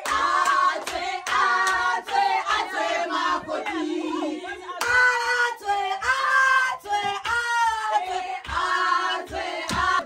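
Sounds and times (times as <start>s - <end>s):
women singing and calling out: 1.2s - 10.0s.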